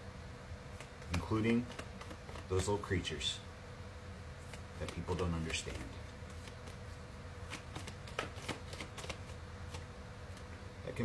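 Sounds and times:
cards being shuffled: 0.7s - 2.9s, 4.4s - 10.6s.

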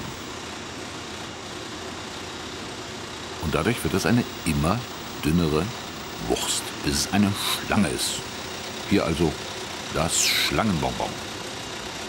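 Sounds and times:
rollers mechanical whir: 0.0s - 12.0s.

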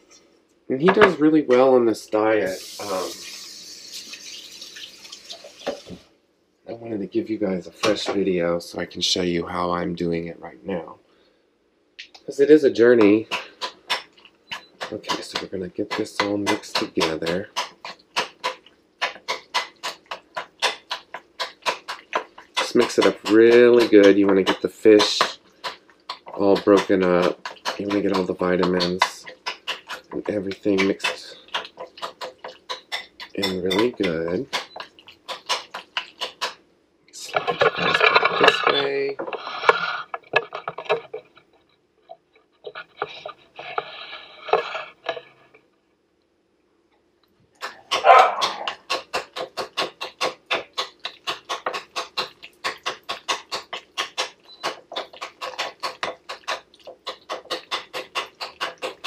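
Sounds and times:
spoon scraping ceramic bowl: 37.2s - 41.6s, 42.6s - 45.6s
fork scraping ceramic bowl: 42.6s - 45.5s, 47.9s - 59.0s.

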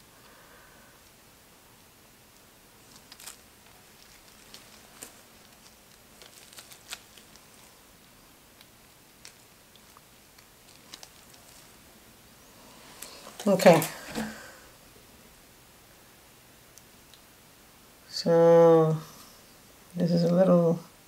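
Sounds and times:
gloved hands handling soap: 2.8s - 11.9s, 12.6s - 14.5s.

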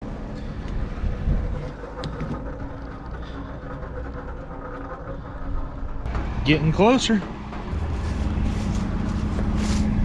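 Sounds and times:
grain auger running: 0.2s - 10.0s.

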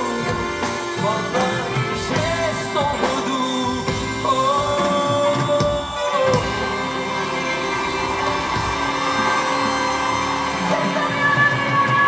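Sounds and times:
live band instrumental chords: 0.0s - 12.0s.

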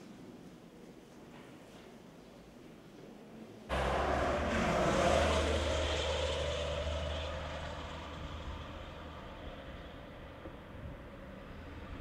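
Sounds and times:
engine low hum: 3.7s - 12.0s.

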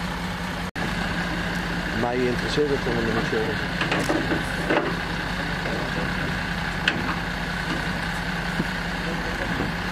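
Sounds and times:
truck engine idling: 0.0s - 9.9s.

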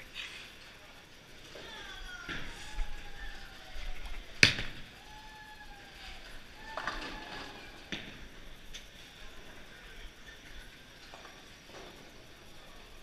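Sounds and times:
faint voices: 0.0s - 13.0s
loud impact crack: 4.4s - 5.0s.

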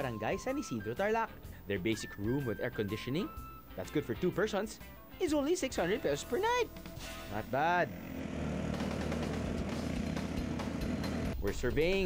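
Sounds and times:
dune buggy engine droning: 7.3s - 11.5s.

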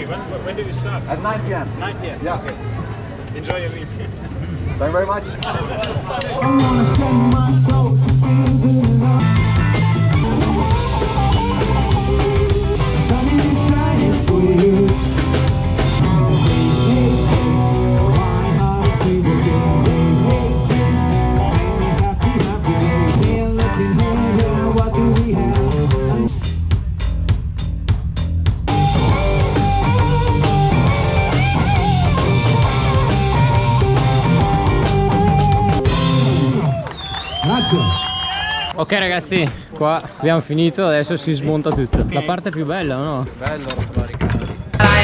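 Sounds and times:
drum kit: 5.4s - 36.7s, 44.5s - 45.0s
person singing: 6.4s - 9.4s, 11.5s - 15.1s, 16.2s - 26.2s, 44.8s - 45.0s
live rock band playing: 6.4s - 36.8s, 44.8s - 45.0s.

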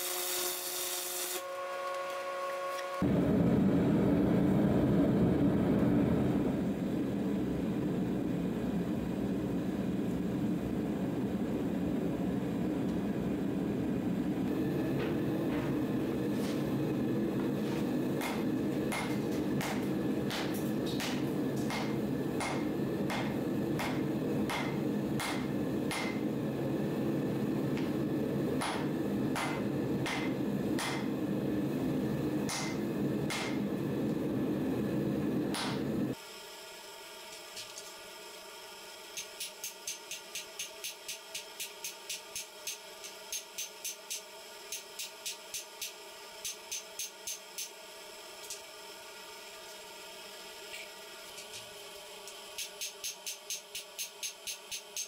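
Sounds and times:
forge burner rushing: 3.0s - 36.2s
sharp metallic ticks: 39.2s - 47.7s, 52.6s - 55.0s.

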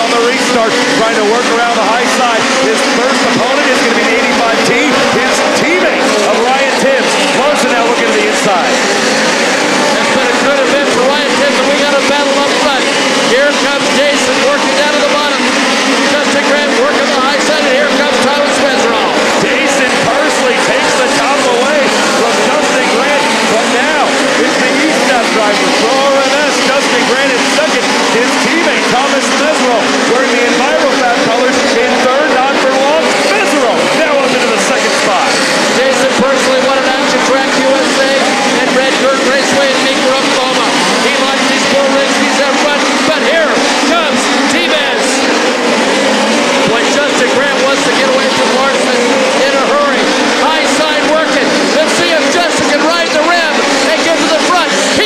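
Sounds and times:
race car engines at high revs: 0.0s - 55.0s.

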